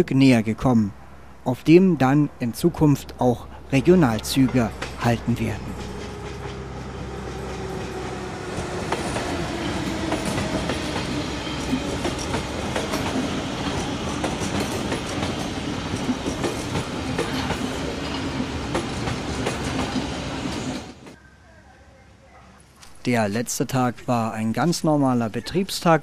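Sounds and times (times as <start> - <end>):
low train hum: 0.0 - 21.6
electric train wheels clattering: 3.9 - 21.2.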